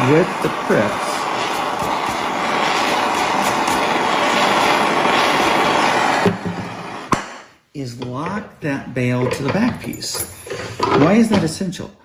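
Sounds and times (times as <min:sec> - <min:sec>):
torch flame hissing: 0:00.0 - 0:07.5.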